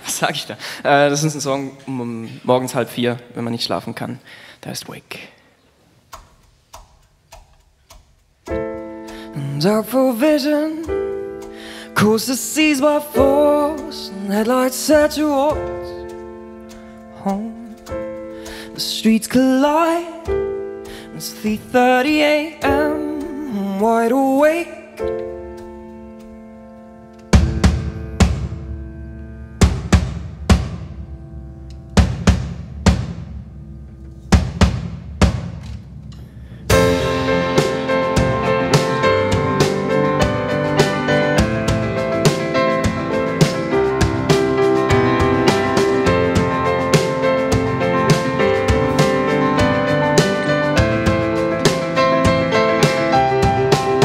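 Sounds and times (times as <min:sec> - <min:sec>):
sharp count-in ticks: 0:06.0 - 0:21.6
solo piano: 0:08.4 - 0:54.0
heavy drum strikes: 0:27.3 - 0:54.0.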